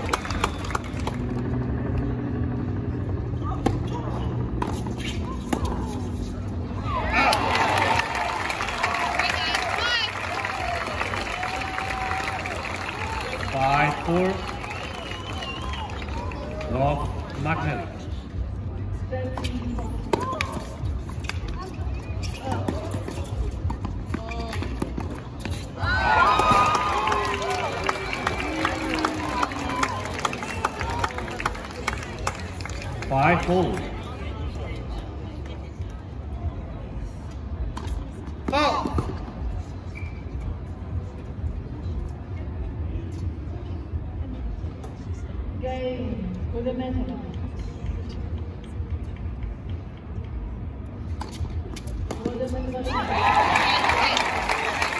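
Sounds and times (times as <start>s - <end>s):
steady low hum: 0.0s - 8.8s
crowd chatter: 0.0s - 54.9s
crowd cheering and shouting: 6.8s - 16.7s, 25.8s - 31.4s, 52.8s - 54.9s.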